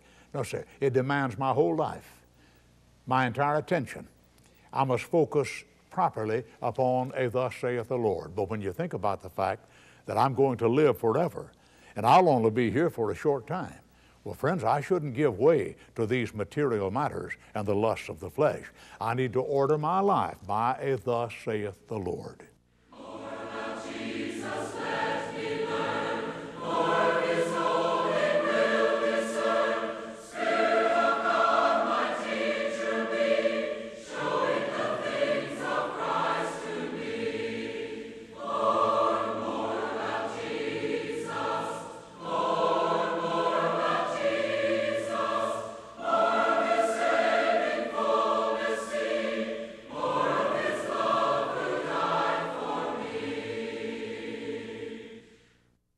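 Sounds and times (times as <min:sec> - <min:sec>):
choir singing: 0:22.9 - 0:55.4.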